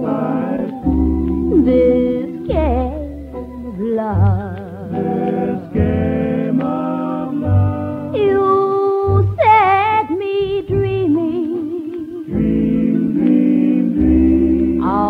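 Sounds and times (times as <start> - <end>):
held melody notes with vibrato: 0.0 - 15.0
bass line: 0.8 - 11.4, 12.3 - 15.0.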